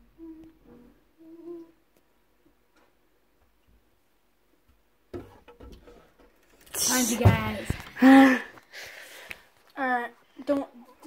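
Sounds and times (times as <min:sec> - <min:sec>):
person humming softly: 0:00.0 - 0:01.9
rustling and knocking: 0:04.6 - 0:08.0.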